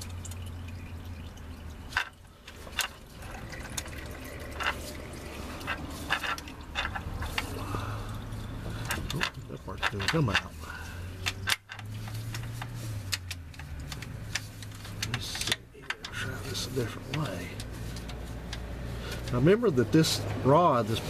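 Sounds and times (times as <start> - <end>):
metal parts clicking and tapping: 1.5 - 19.6.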